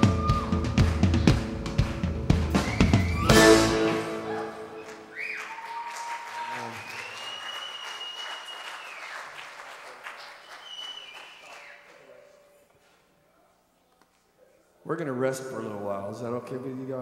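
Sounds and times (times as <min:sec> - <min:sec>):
high whoops or whistles: 0:00.0 - 0:00.7, 0:02.6 - 0:09.3, 0:10.3 - 0:12.3
audience applause and cheering: 0:00.0 - 0:12.2.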